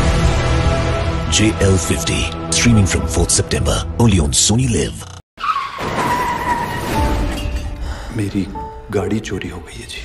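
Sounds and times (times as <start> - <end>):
tyres screeching in a skid: 5.4 - 7.4.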